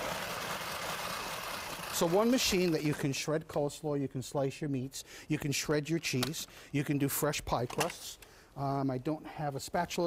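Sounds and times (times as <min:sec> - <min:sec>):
hand-cranked food processor grinding: 0:00.0 - 0:02.9.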